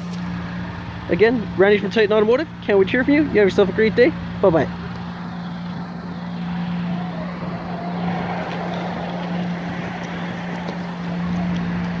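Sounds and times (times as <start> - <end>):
outdoor background noise: 0.0 - 12.0
steady mechanical hum: 0.0 - 12.0.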